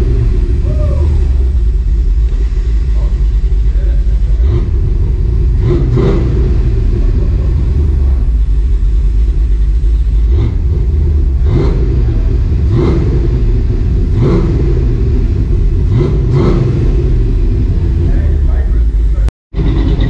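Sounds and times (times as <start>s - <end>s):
truck engine idling and revving: 0.0s - 20.0s.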